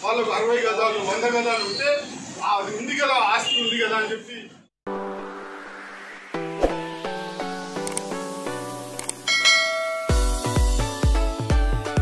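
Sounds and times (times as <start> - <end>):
click sound effect: 7.8 - 8.1, 8.9 - 9.3
bell chime ringing: 9.3 - 10.4.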